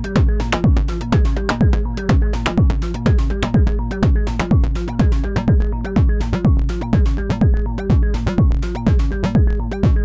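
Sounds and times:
kick drum: 0.0 - 10.0
sequenced synth bass line: 0.0 - 10.0.

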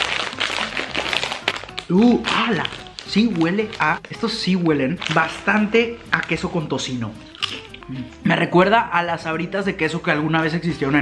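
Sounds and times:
plastic chip bag crinkling: 0.0 - 6.5, 7.2 - 7.9.

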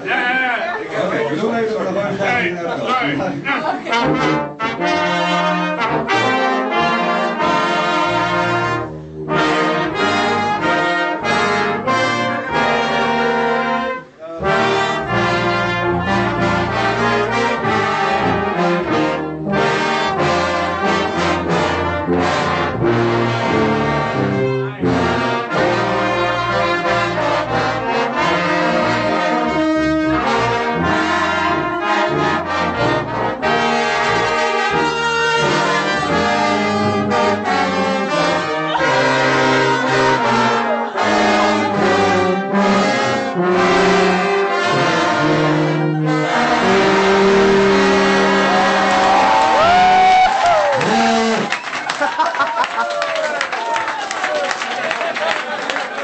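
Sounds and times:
brass band playing: 0.0 - 51.8
tubas playing bass line: 0.0 - 52.3.

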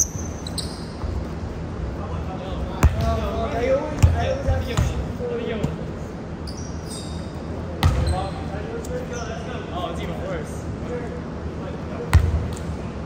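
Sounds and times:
players' voices: 1.8 - 6.2.

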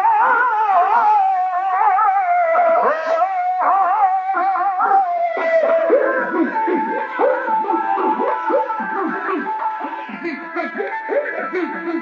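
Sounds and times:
reedy ornamented melody: 3.6 - 12.0.

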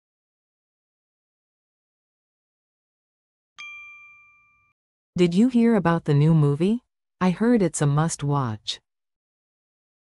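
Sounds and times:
bright bell-like ding: 3.6 - 4.8.

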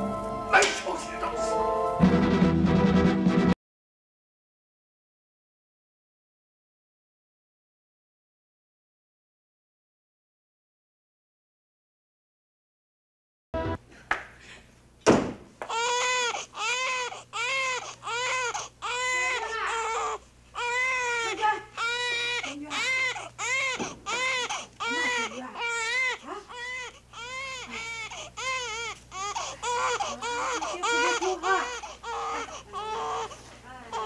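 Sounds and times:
sharp knock: 15.0 - 15.5
baby crying: 15.6 - 34.0.

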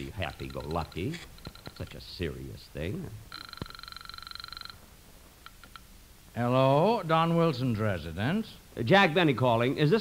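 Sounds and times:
telephone ringing: 0.0 - 1.8, 3.3 - 4.9.

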